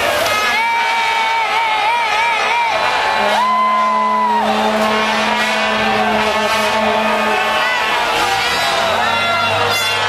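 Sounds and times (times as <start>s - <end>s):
large crowd of fans: 0.0s - 10.0s
horn holding low note: 0.7s - 10.0s
higher note gliding down: 2.9s - 8.4s.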